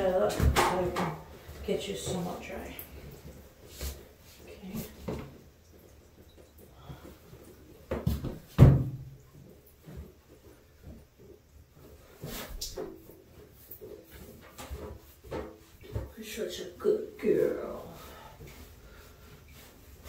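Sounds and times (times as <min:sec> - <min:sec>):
knocks and bumps in tiled room: 0:00.0 - 0:16.4.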